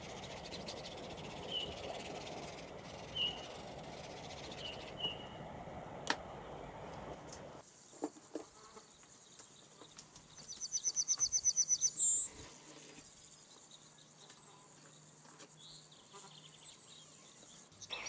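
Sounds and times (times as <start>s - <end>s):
small animal trilling chirps: 10.4s - 12.4s, 17.8s - 18.0s.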